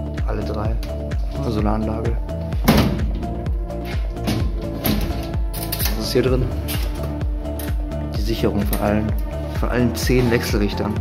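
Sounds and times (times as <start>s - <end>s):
electronic music with steady beat: 0.0s - 11.0s.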